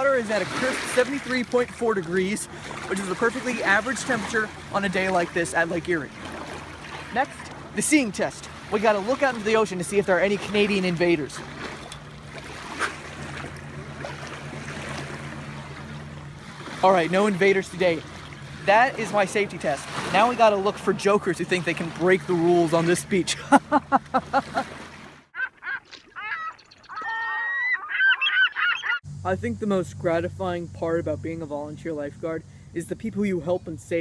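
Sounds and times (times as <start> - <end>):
small waves washing on shore: 0.0 - 26.2
birds calling: 0.0 - 29.1
steady low hum: 29.0 - 34.0.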